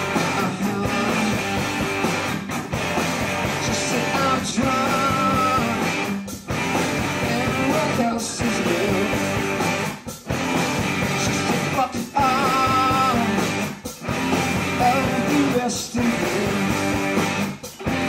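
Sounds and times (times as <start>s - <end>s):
man singing: 0.0s - 1.8s, 3.5s - 6.2s, 7.0s - 9.6s, 11.0s - 13.8s, 14.7s - 17.2s
live rock band playing: 0.0s - 18.0s.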